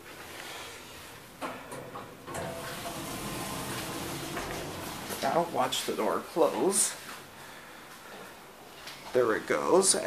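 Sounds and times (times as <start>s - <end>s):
elevator doors rushing open: 1.3s - 6.4s
elevator door clicks: 1.4s - 5.6s.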